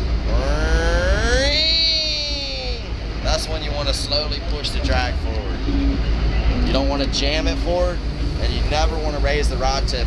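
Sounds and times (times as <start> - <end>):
man imitating reel whine: 0.3 - 2.9.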